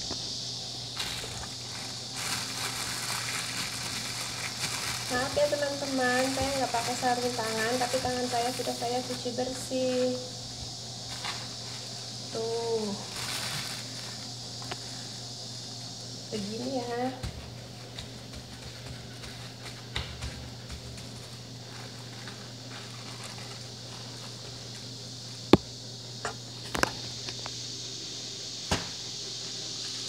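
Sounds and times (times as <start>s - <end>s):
high hiss: 0.0s - 17.3s, 21.4s - 30.0s
steady low hum: 0.0s - 30.0s
plastic bag rustling: 0.8s - 15.0s, 20.9s - 24.8s.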